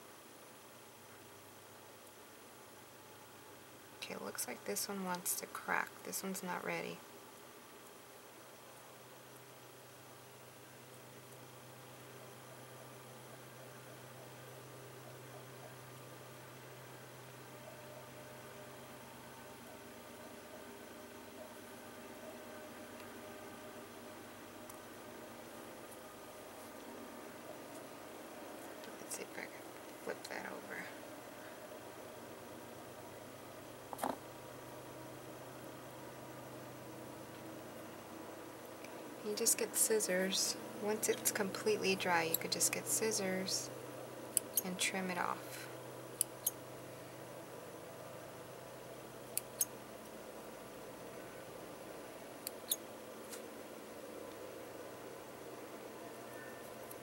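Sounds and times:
faint steady hiss: 0.0s - 57.0s
woman whispering: 28.8s - 31.0s.

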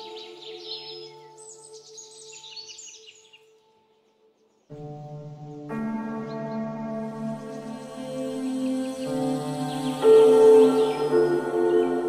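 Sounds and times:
ambient music drone: 4.7s - 12.0s.

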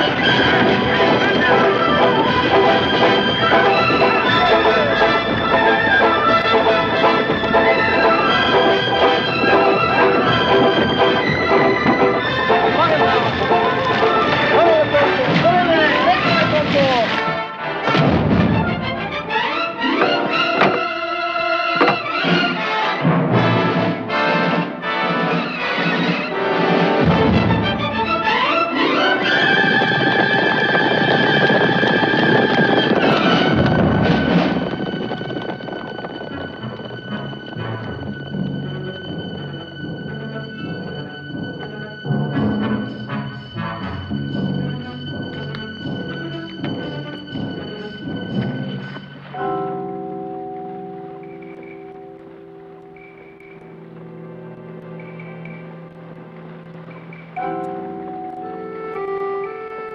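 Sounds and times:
orchestral film music: 0.0s - 59.9s
strings sliding: 0.0s - 59.9s.

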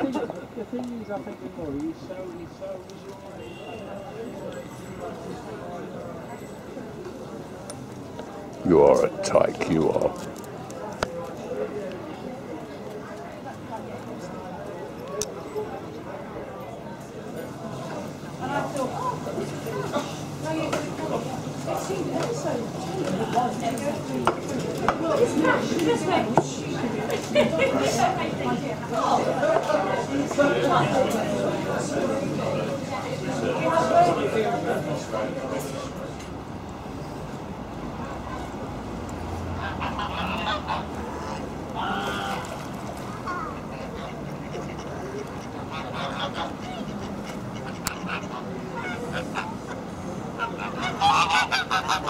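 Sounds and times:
distant people talking: 0.0s - 52.0s
murmur of conversation: 0.0s - 52.0s.

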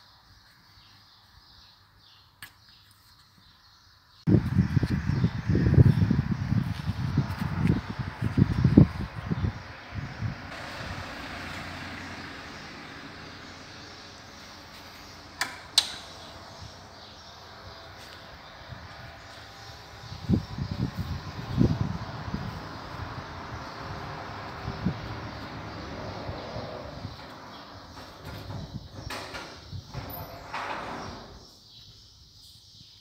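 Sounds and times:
microphone rubbing rumble: 4.3s - 11.1s, 16.1s - 30.4s.

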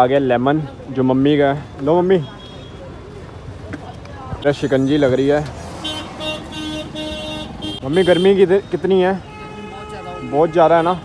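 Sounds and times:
vehicle horn honking: 5.8s - 11.0s.

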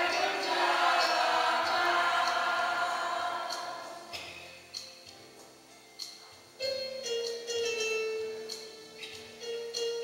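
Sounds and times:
choir singing: 0.0s - 4.2s.

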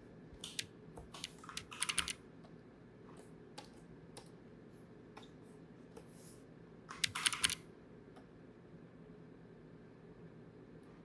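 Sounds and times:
computer keyboard keystrokes: 0.4s - 2.2s, 6.9s - 7.6s.

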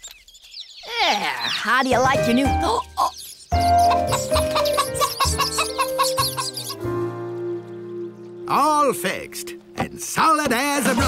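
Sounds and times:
background music: 1.8s - 11.0s
cartoon hen clucking: 2.8s - 6.8s.

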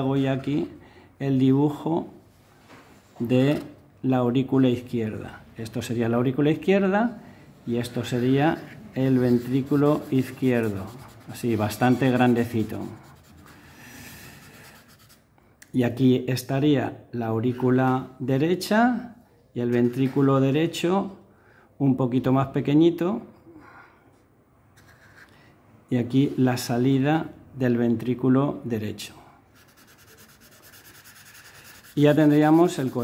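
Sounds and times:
marker scratching on paper: 7.9s - 15.3s, 24.8s - 25.4s, 29.6s - 33.0s.

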